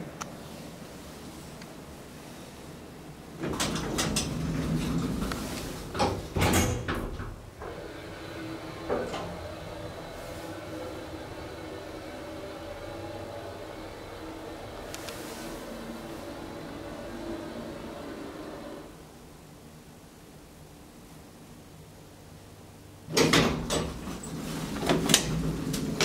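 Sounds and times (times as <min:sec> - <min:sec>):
elevator doors rumbling shut: 0:03.4 - 0:18.9, 0:23.1 - 0:26.0
click: 0:14.9 - 0:15.2.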